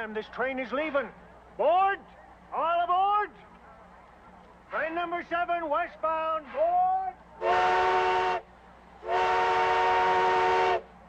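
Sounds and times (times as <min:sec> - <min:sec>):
steam locomotive whistle blast: 0:07.4 - 0:08.4, 0:09.0 - 0:10.9.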